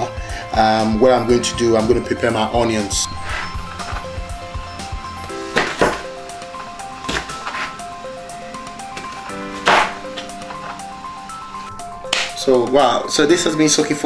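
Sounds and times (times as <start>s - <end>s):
plucked background music: 0.0s - 14.0s.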